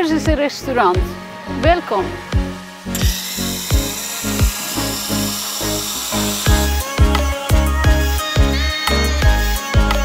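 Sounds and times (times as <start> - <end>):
background music with beat: 1.0 - 10.0
espresso machine hissing: 2.5 - 7.8
water running into glass: 2.9 - 6.9.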